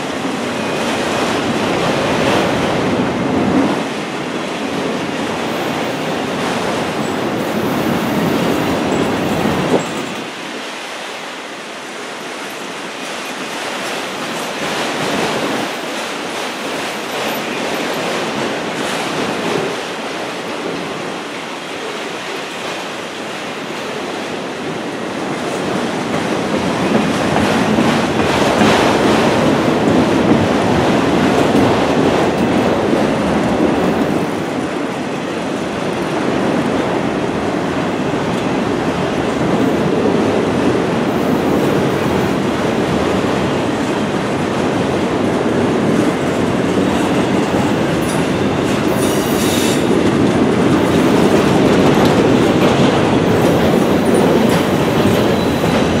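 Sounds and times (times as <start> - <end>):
freight train rolling past: 0.0 - 56.0.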